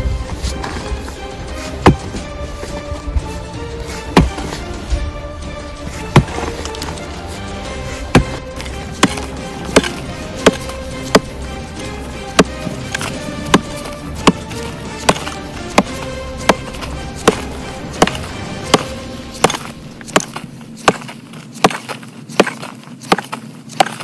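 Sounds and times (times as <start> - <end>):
background music with held tones: 0.0 - 21.1
pickaxe striking rocky ground: 0.4 - 2.8, 3.9 - 4.9, 5.9 - 24.0.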